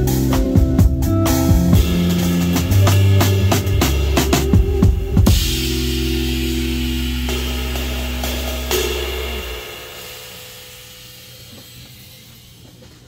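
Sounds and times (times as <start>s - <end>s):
electric bass notes: 0.0s - 12.7s
cymbal wash: 1.8s - 12.9s
band final chord ringing: 5.2s - 11.6s.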